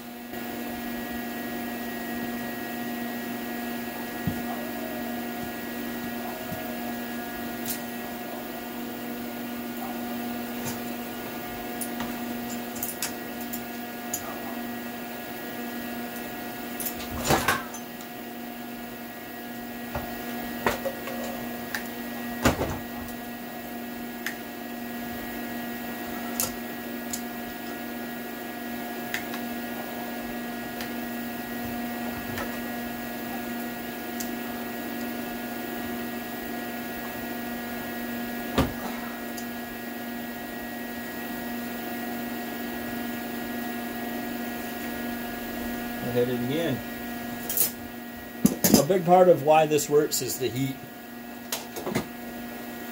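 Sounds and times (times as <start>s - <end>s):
electrical machine hum: 0.0s - 52.9s.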